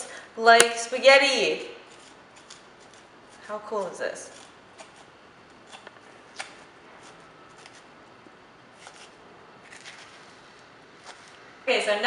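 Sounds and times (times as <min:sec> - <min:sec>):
fork scraping squash flesh: 0:01.8 - 0:07.9, 0:08.8 - 0:10.4, 0:11.0 - 0:11.4.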